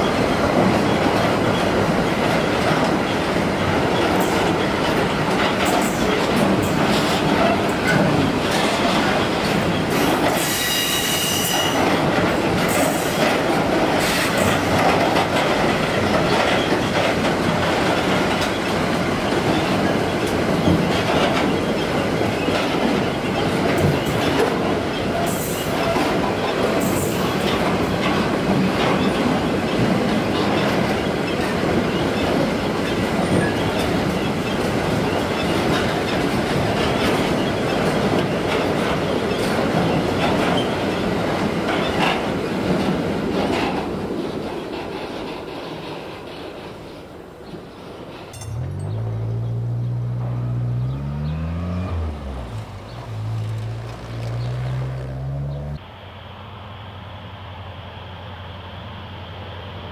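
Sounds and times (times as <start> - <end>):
train wheels rumbling on rails: 0.0 - 55.9.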